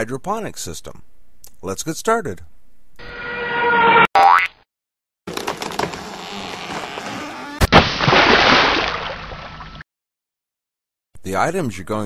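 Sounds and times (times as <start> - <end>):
synthesized sustained tone: 3.0 - 4.1.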